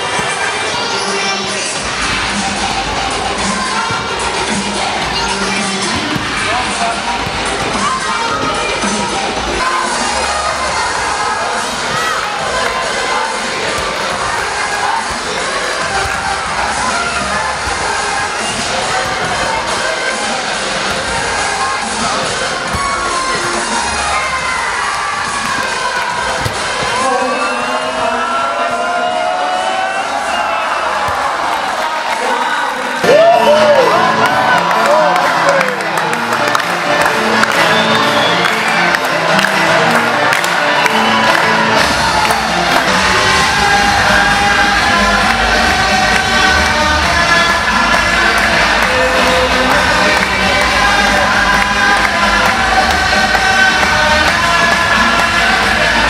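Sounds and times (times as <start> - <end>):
children cheering and shouting: 0.0 - 56.0
heavy bass: 1.6 - 27.2, 33.0 - 56.0
music with steady beat: 36.2 - 56.0.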